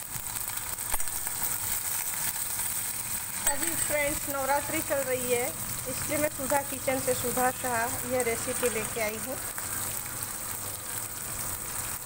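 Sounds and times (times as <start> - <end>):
chillies sizzling in oil: 0.0 - 12.0.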